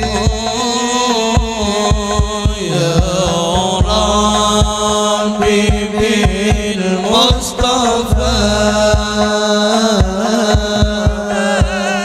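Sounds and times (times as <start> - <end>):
frame drums striking: 0.0 - 11.8
man singing through microphone: 0.0 - 12.0.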